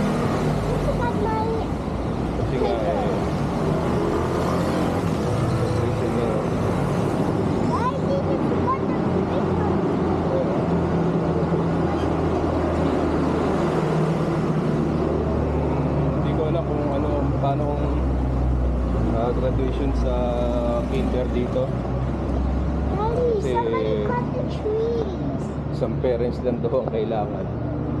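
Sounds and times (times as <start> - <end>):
road traffic rumble: 0.0 - 28.0.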